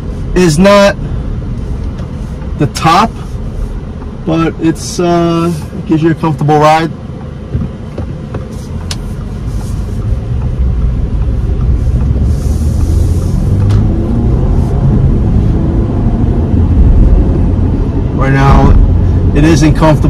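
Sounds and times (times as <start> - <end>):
engine and road rumble: 0.0 - 20.0.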